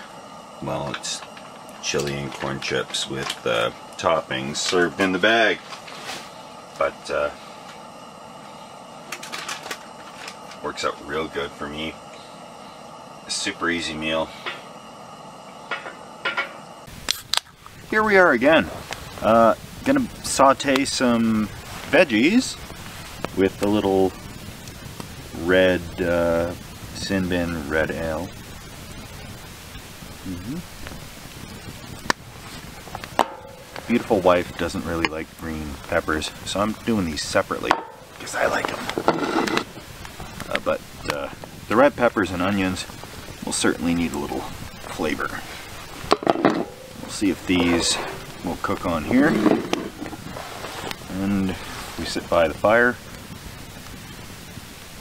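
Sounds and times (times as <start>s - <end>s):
low hiss: 0.0s - 55.0s.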